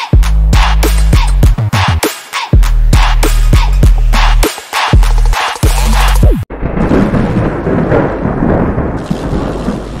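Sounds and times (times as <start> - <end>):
thunder-like low rumbling: 6.5 - 10.0.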